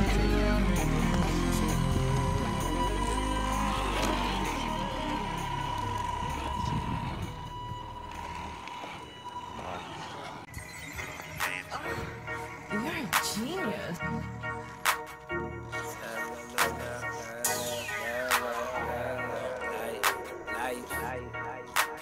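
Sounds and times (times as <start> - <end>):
heavy bass: 0.0 - 8.7, 13.8 - 21.8
instrumental hip-hop beat: 0.0 - 22.0.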